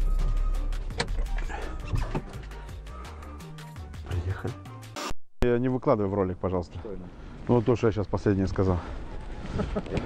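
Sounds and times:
background music: 0.0 - 5.1.

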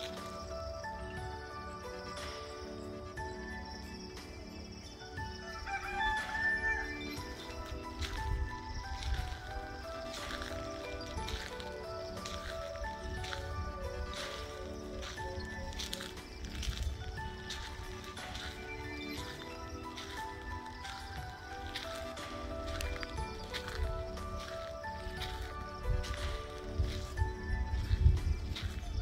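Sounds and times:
background music: 0.0 - 29.0
rooster crowing: 5.4 - 7.3.

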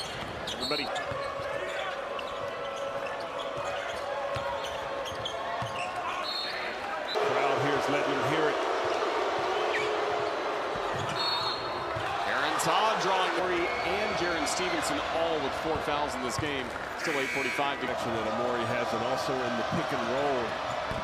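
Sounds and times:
sneakers squeaking: 0.0 - 6.7
arena crowd noise: 0.0 - 21.0.

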